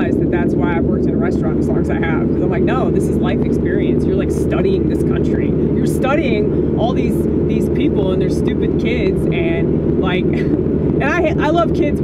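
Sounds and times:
car rumble from inside cabin: 0.0 - 12.0
person talking: 0.0 - 12.0.

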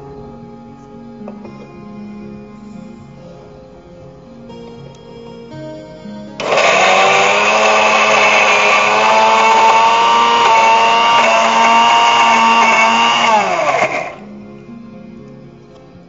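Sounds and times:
mixer grinder motor running: 6.4 - 14.2.

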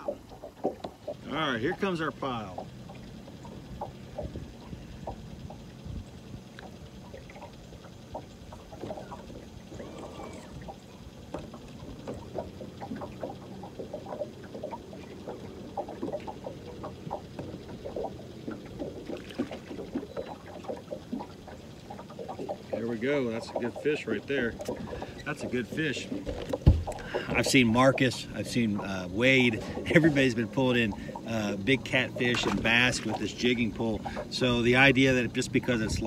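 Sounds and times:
water lapping against hull: 0.0 - 36.0.

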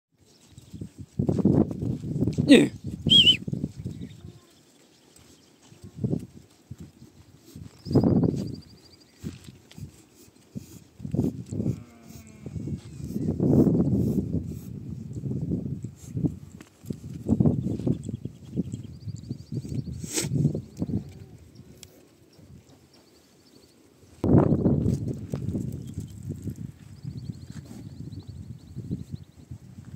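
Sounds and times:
hoof steps and shuffling: 0.2 - 29.9
short low animal sound: 11.5 - 13.7
sheep and goats bleating: 11.6 - 12.8.

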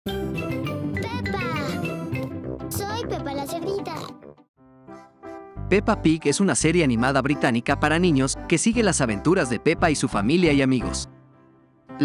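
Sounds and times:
bright children's music: 0.1 - 12.0
cartoon child voice speaking: 1.0 - 1.9, 2.7 - 4.2
cartoon piglet oinking: 3.0 - 4.2.

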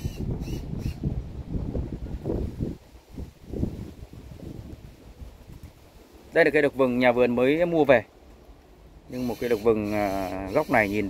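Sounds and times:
wind buffeting microphone: 0.0 - 7.9.

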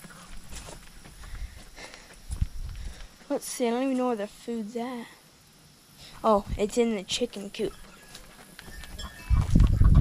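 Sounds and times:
footsteps on grass: 0.0 - 4.1, 7.7 - 9.8.

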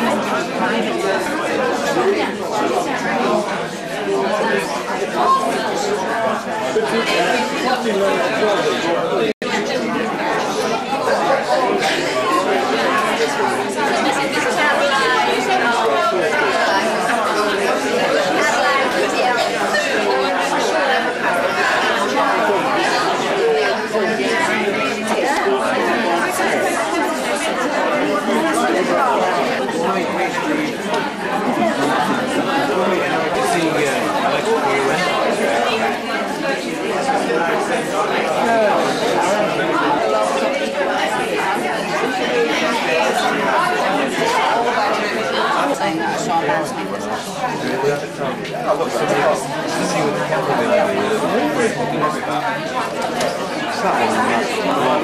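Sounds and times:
overlapping conversation: 0.0 - 55.0.

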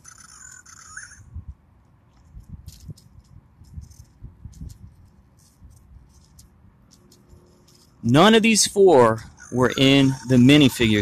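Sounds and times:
high chirping: 0.0 - 1.4
toy handled with gloved hands: 1.8 - 8.4.

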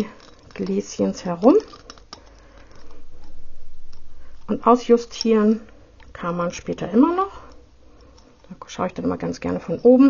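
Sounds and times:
wire handling on glass jar: 0.0 - 6.2
low steady rumble: 0.0 - 10.0.

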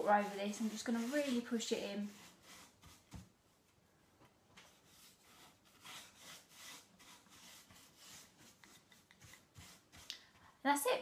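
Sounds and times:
paintbrush scratching on wood: 0.0 - 3.3, 4.6 - 10.1.

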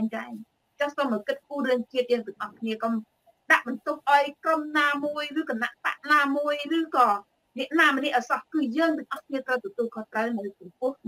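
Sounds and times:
woman talking over video call: 0.0 - 11.0.

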